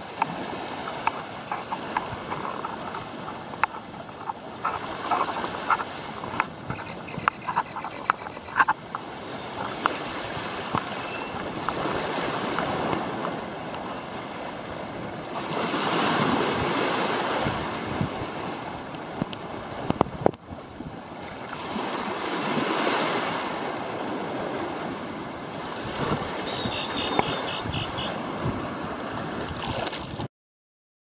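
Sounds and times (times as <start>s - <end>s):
sea waves washing in: 0.0s - 30.3s.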